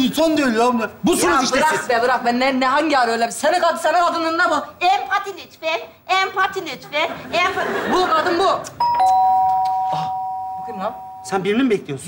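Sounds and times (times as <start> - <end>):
two-tone doorbell chime: 8.8 - 11.6.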